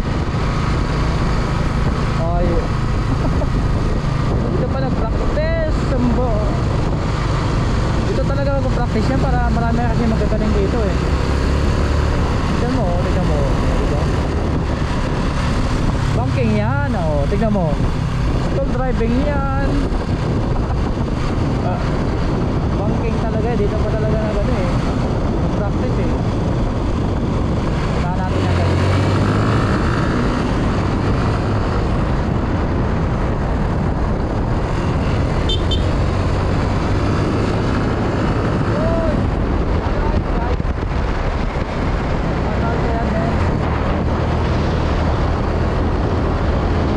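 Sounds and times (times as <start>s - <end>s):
motorcycle engine running: 0.0s - 46.9s
wind rushing over microphone: 0.0s - 46.9s.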